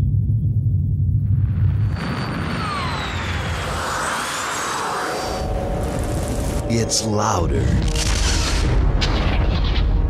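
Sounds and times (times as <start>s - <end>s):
deep rumble: 0.0s - 10.0s
faint gliding whistles: 1.8s - 3.8s.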